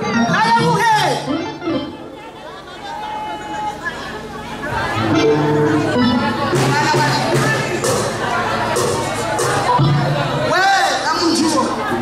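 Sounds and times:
faint music: 0.0 - 12.0
people chattering over loudspeakers: 0.0 - 12.0.

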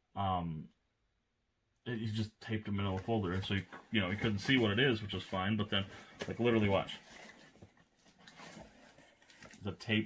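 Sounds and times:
paper and cardboard rustling: 2.8 - 10.0.

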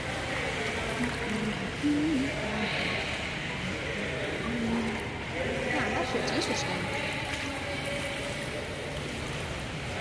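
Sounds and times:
faint distant voices: 0.0 - 10.0
swimmer splashing water: 0.0 - 10.0.

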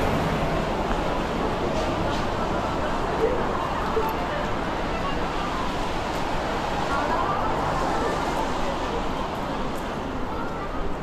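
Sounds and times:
traffic on a wet road: 0.0 - 11.0.

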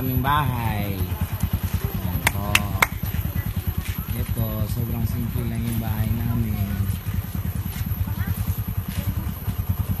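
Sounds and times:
small engine idling: 0.0 - 10.0.

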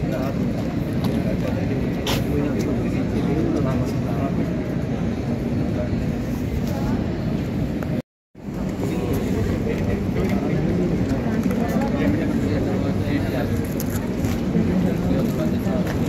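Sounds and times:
steady outdoor rumbling: 0.0 - 16.0
people talking indistinctly: 8.6 - 16.0.

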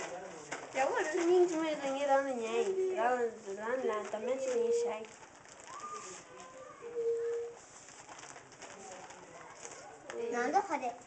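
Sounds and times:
room murmur: 0.0 - 11.0
cooing note: 6.8 - 7.6.

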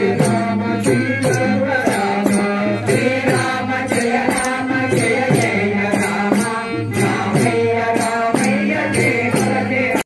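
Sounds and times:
group singing devotional chant: 0.0 - 10.0
small hand cymbals: 0.0 - 10.0.

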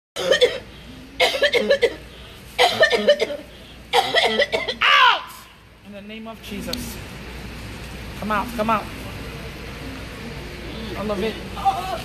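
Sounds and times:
woman retching and coughing: 0.2 - 2.0, 2.6 - 4.8.

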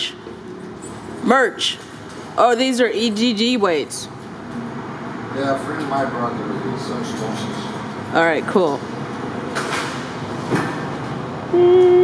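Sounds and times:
constant background hum: 0.0 - 12.0
steady tone: 11.5 - 12.0.

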